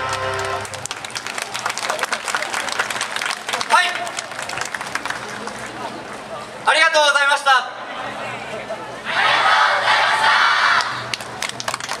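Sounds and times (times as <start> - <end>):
audience clapping: 0.0 - 6.3, 10.7 - 12.0.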